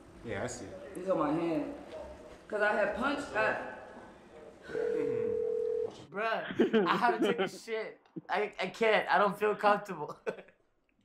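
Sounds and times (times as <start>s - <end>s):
telephone tone: 4.7s - 6.0s.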